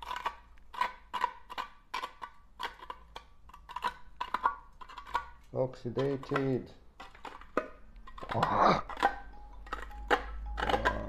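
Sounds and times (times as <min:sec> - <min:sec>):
screw scraping tin can: 0:00.0 - 0:11.0.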